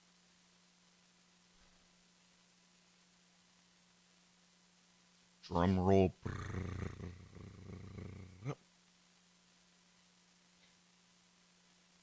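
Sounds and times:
man imitating drum roll with mouth: 6.1 - 8.6.

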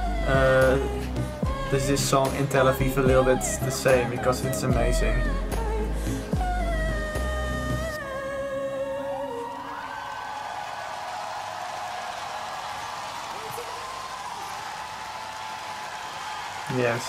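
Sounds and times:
audience cheering and applauding: 9.1 - 17.0.

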